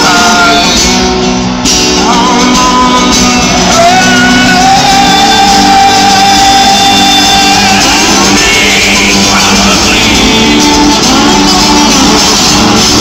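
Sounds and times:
acoustic guitars playing: 0.0s - 13.0s.

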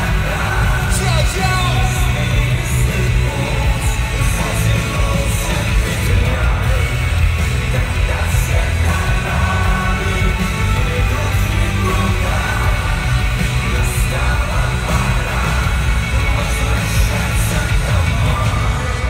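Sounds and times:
crowd yelling and singing along: 0.0s - 19.0s
live hip-hop music: 0.0s - 19.0s.

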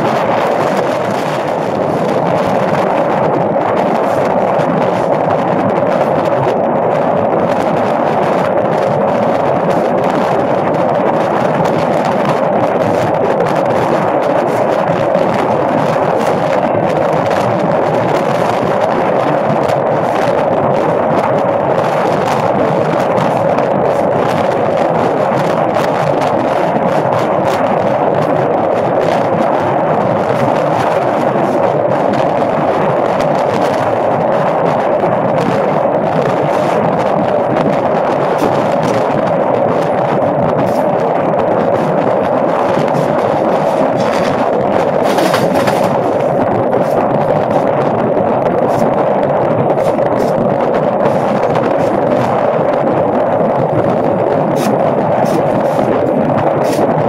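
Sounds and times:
train wheels rolling on rails: 0.0s - 57.0s
wind rushing past train: 0.0s - 57.0s.

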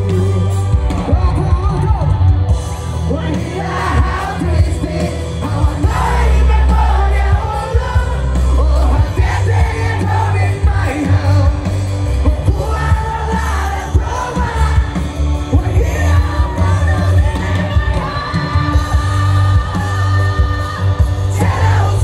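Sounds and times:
heavy bass: 0.0s - 22.0s
live concert music: 0.0s - 22.0s
person singing: 3.1s - 22.0s.

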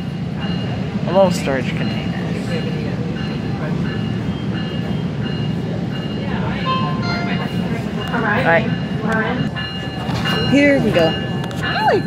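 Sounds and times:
train rumble: 0.0s - 12.0s.

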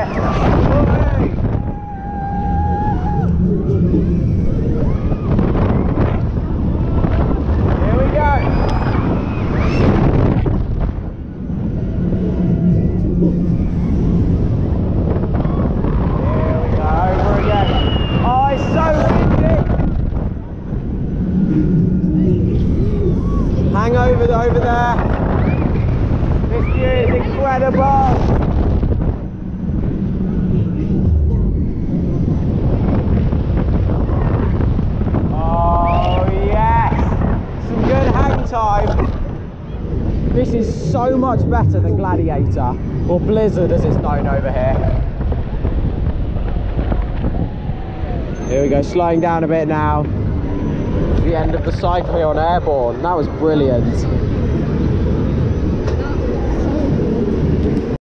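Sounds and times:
riders screaming and shouting: 0.0s - 10.5s, 11.3s - 28.5s, 29.2s - 41.6s, 44.5s - 51.8s, 53.4s - 58.0s
wind buffeting microphone: 0.0s - 58.0s.

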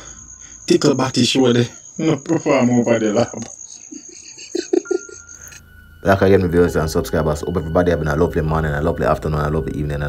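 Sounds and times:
faint high-pitched whine: 0.0s - 10.0s
man laughing: 2.0s - 5.6s.

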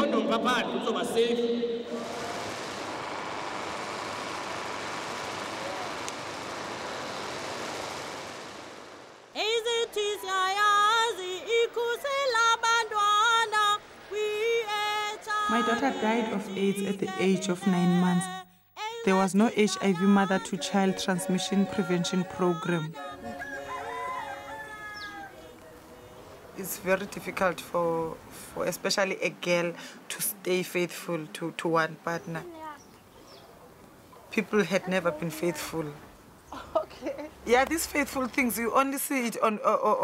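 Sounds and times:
long rising and falling animal call: 23.3s - 25.4s.

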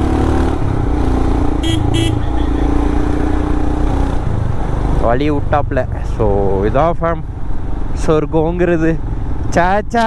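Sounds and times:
motorcycle engine rumble: 0.0s - 10.0s
man talking: 5.0s - 7.3s, 8.0s - 10.0s.

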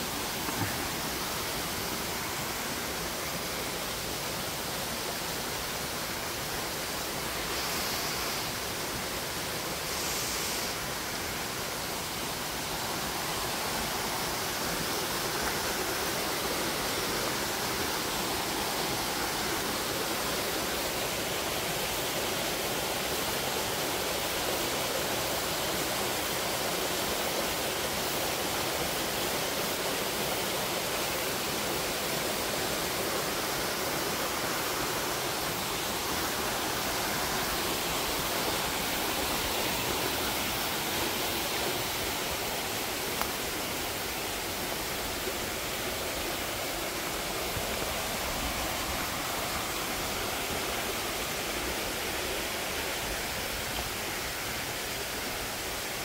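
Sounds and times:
stream rushing over rocks: 0.0s - 56.0s.

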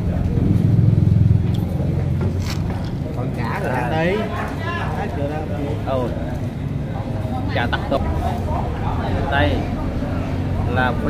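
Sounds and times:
engine low pulsing rumble: 0.0s - 4.0s.

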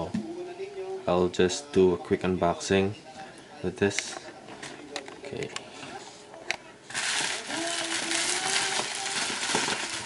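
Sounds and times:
plastic mailer crinkling: 6.9s - 10.0s.

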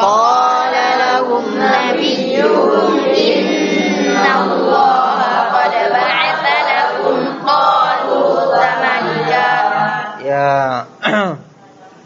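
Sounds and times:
group chanting in unison: 0.0s - 10.3s.

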